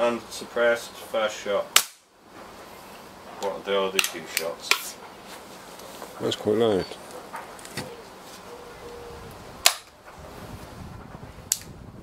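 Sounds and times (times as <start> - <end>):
air pistol cracks: 1.8 - 2.0, 9.6 - 9.9.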